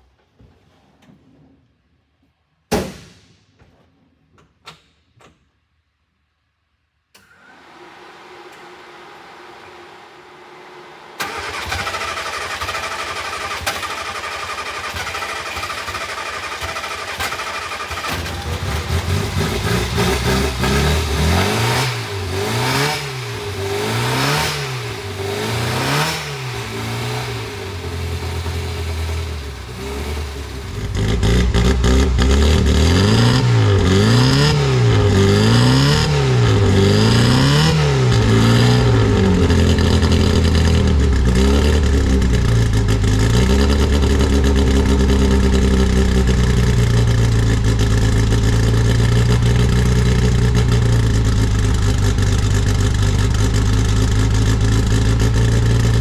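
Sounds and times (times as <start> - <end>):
car engine running: 16.8 - 56.0.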